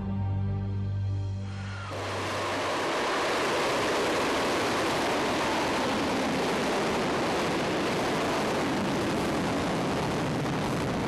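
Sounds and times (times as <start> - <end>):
rocket motor rushing: 1.9 - 11.0.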